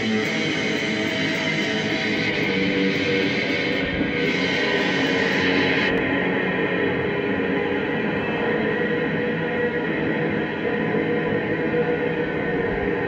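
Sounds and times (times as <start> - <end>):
droning electric guitar: 0.0 - 13.0.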